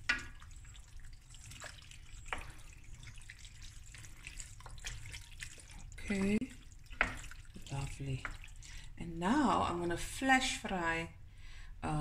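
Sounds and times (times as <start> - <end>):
wet squelching of stirred pasta: 0.0 - 10.1
low steady hum: 0.0 - 12.0.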